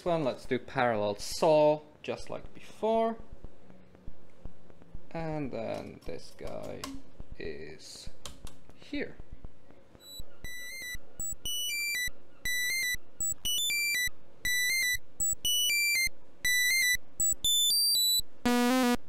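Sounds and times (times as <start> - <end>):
patch cable clicks: 5.5 - 7.2, 8.2 - 9.0
high-pitched synth beeps: 10.0 - 19.0.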